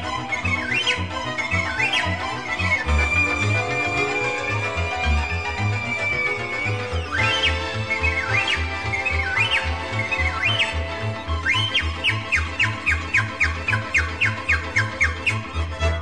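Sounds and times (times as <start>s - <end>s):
pan flute runs: 0.0s - 16.0s.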